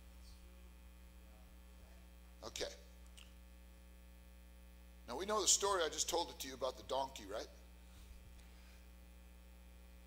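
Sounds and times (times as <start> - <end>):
low electrical mains hum: 0.0 - 10.0.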